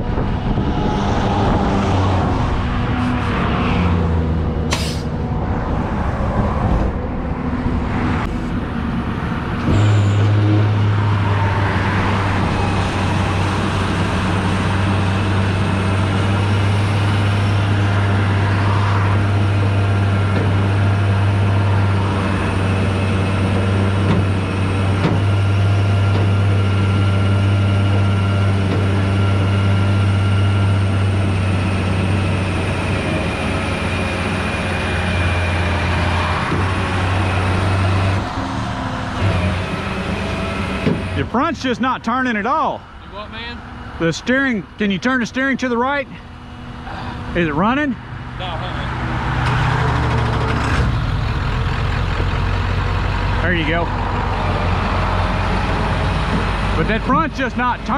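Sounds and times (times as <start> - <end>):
truck engine idling: 11.1 - 57.9.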